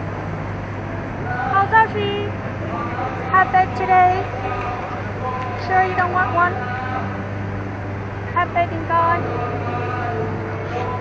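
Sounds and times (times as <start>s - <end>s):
city road traffic drone: 0.0s - 11.0s.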